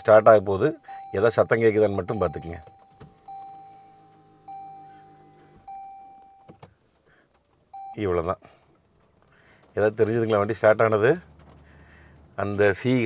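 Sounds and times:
car dashboard chime: 0:00.5 - 0:06.6, 0:07.7 - 0:08.2
low electric whir: 0:03.2 - 0:06.2.

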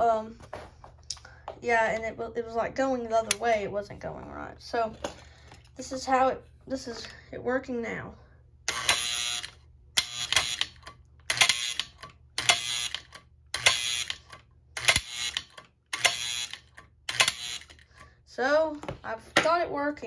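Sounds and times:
electric mechanism buzzing: 0:08.7 - 0:17.9.

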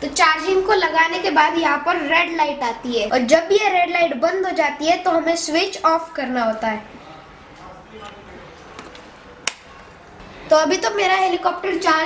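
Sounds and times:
wall switch clicking off: 0:09.4 - 0:09.7.

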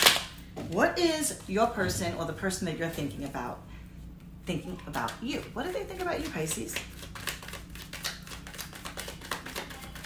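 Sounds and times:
cards being shuffled: 0:05.8 - 0:10.0.

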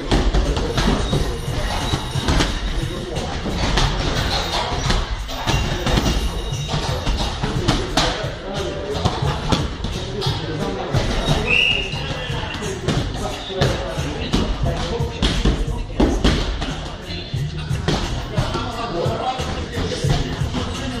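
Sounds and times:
boxing gloves hitting mitts: 0:00.0 - 0:08.3, 0:12.9 - 0:16.9
background music with voice: 0:00.0 - 0:21.0.

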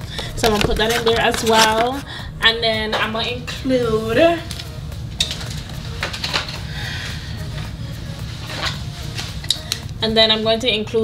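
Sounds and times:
low steady hum: 0:00.0 - 0:11.0
paper and cardboard rustling: 0:00.1 - 0:02.1.

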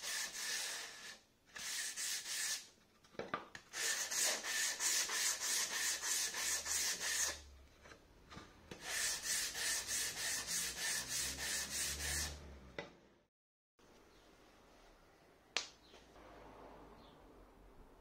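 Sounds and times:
sanding block rubbing on wood: 0:00.0 - 0:02.7, 0:03.7 - 0:07.4, 0:08.8 - 0:12.4.

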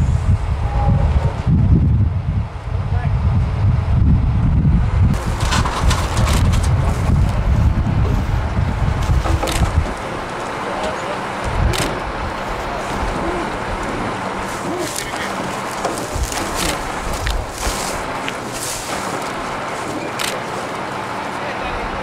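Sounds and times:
steady outdoor hiss: 0:00.0 - 0:22.0
wind buffeting microphone: 0:00.0 - 0:22.0.

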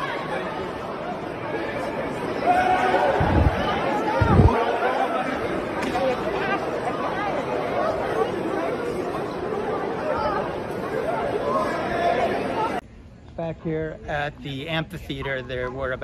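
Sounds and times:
agitated crowd babble: 0:00.0 - 0:12.8.

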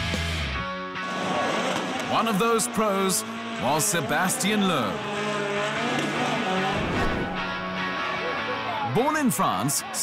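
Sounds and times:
car engine revving: 0:01.0 - 0:08.9.

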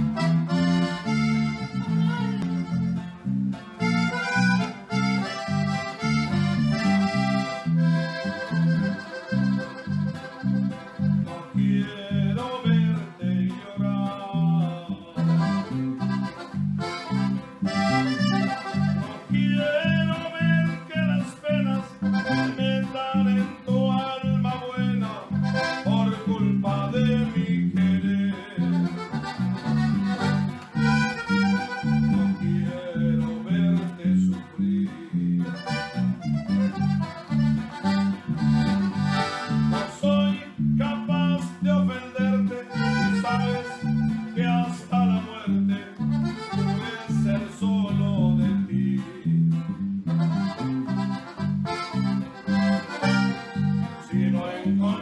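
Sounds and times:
button accordion melody: 0:00.0 - 0:13.1, 0:15.0 - 0:48.6, 0:49.2 - 0:55.0
strummed bajo sexto rhythm: 0:00.0 - 0:55.0.

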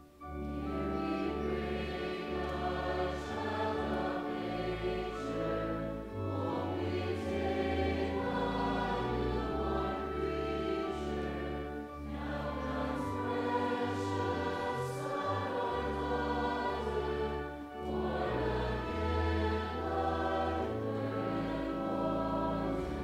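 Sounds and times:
organ: 0:00.0 - 0:23.0
voices singing a hymn: 0:00.0 - 0:23.0.

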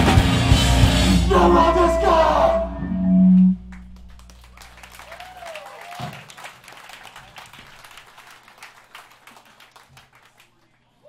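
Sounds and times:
band holding a low note: 0:00.0 - 0:04.8
amplifier hum: 0:01.1 - 0:04.9
audience cheering: 0:01.1 - 0:10.6
audience clapping: 0:03.7 - 0:11.0.

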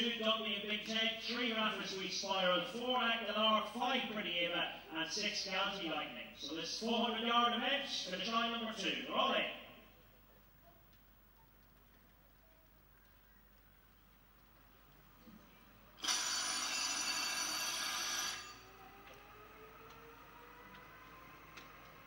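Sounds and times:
electric bell ringing: 0:16.0 - 0:18.9.

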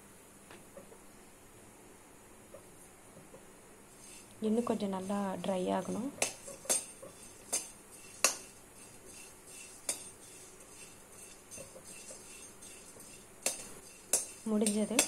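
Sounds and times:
metal skimmer clinking on pan: 0:05.8 - 0:15.0.

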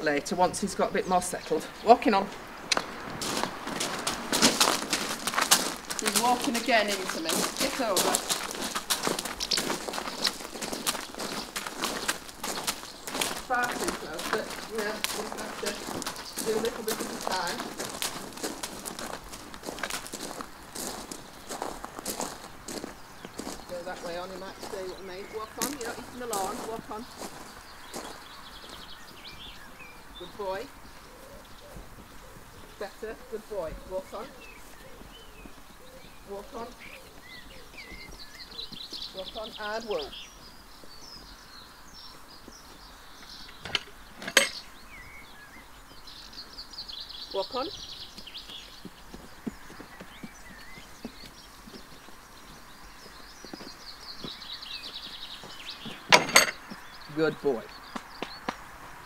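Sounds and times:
hooves walking on gravel: 0:00.0 - 0:59.0
songbirds chirping: 0:00.0 - 0:59.0
boots crunching on gravel: 0:01.6 - 0:59.0.

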